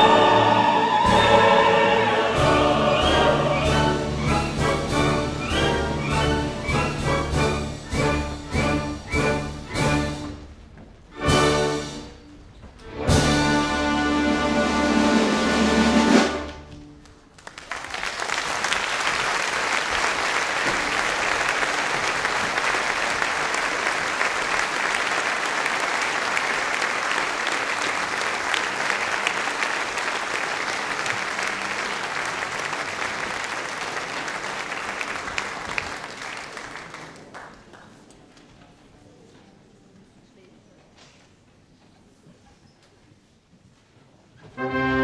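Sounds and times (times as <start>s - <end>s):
orchestra closing chord: 0.0s - 8.7s, 44.5s - 45.0s
large audience applauding: 17.0s - 38.4s.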